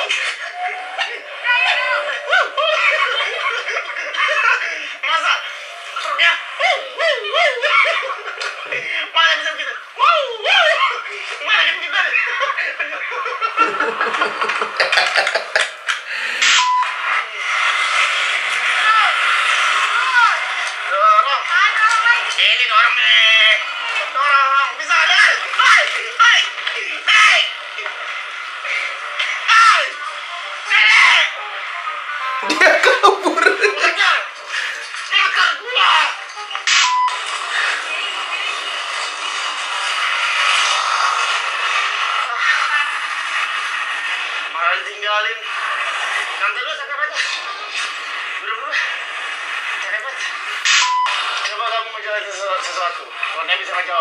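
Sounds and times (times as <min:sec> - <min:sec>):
people's voices: 0:00.0 - 0:54.0
background music: 0:13.4 - 0:16.4, 0:27.5 - 0:36.8.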